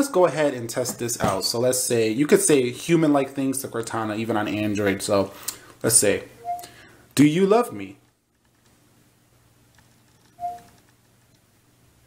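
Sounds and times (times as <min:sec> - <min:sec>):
short electronic beep: 0:06.4 - 0:06.7, 0:10.4 - 0:10.7.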